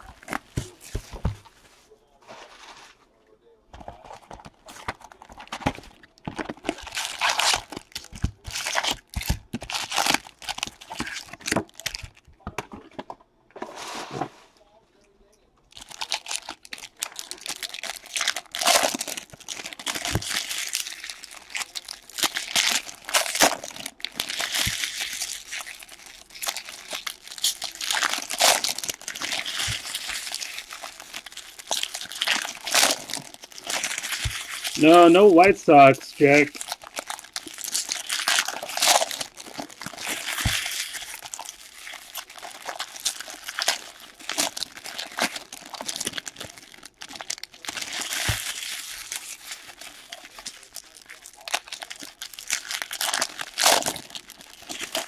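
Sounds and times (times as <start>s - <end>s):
foil wrappers crinkling and tearing: 3.8s - 12.7s, 15.7s - 55.0s.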